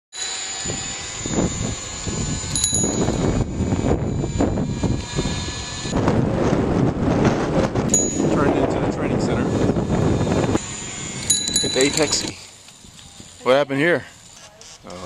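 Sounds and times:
wind and road noise: 0:00.4 - 0:15.0
bicycle bell ringing: 0:02.3 - 0:03.5, 0:07.9 - 0:08.5, 0:11.2 - 0:12.4.

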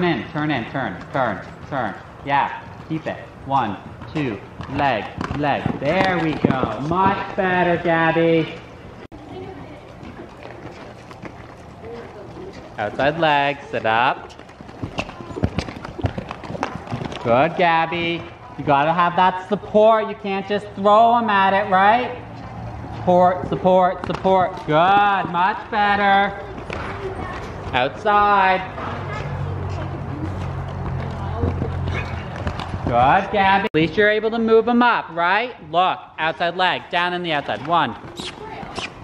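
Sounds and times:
horse hoofbeats on sand: 0:03.7 - 0:07.8, 0:09.5 - 0:18.4.

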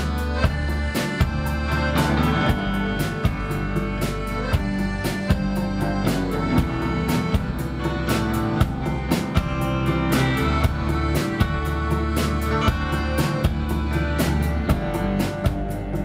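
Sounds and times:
accordion: 0:00.0 - 0:16.0
drum beat: 0:00.0 - 0:16.0
guitar: 0:00.0 - 0:16.0.

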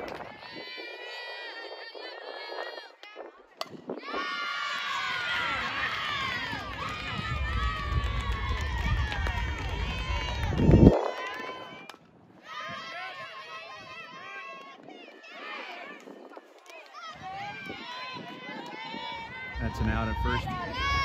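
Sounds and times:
girls cheering and yelling: 0:04.0 - 0:11.8, 0:12.4 - 0:21.0.

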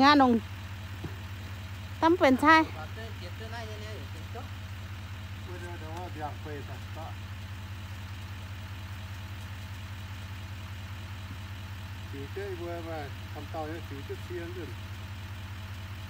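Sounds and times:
pickup engine idling: 0:00.0 - 0:16.0.

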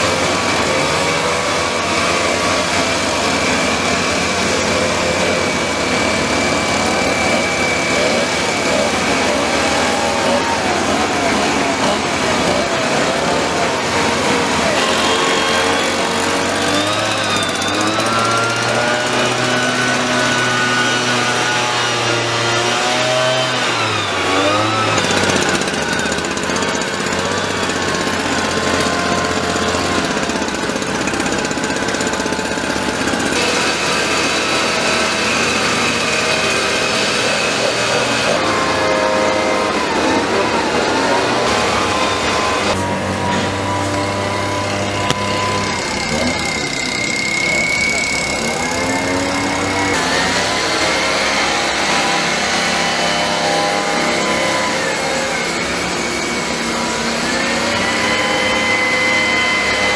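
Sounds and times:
two-stroke mist-blower engines: 0:00.0 - 0:59.9.

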